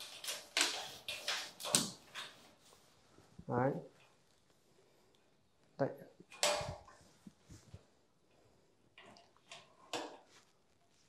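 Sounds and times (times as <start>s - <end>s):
small clicks and knocks: 0.0s - 2.5s
rustling: 0.0s - 11.0s.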